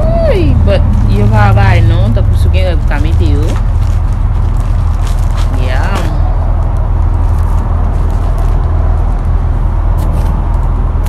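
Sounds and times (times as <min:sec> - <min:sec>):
loud low rumble: 0:00.0 - 0:11.0.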